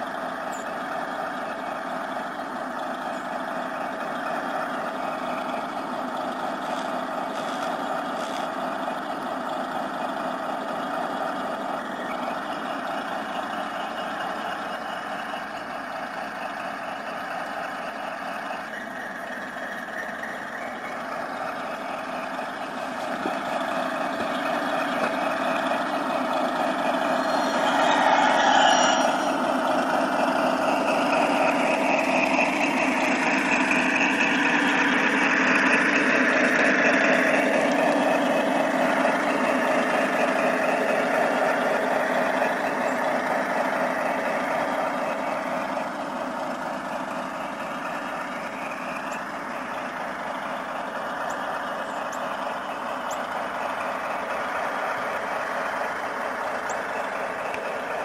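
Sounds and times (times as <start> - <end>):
model locomotive running on track: 0.0 - 58.0.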